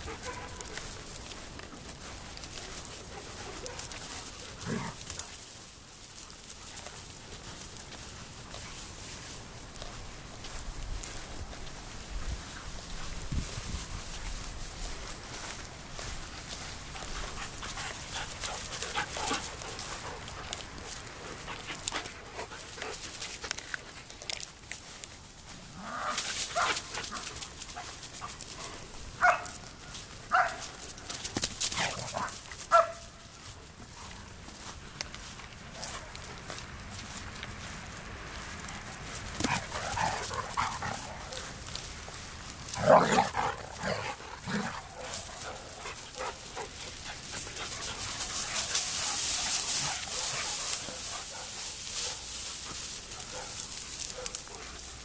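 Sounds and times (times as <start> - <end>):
dogs barking: 0.0 - 0.8, 3.1 - 5.0, 29.2 - 29.6, 30.3 - 30.7, 31.8 - 33.2, 42.8 - 52.3, 53.1 - 54.8
rustling through grass: 0.0 - 55.0.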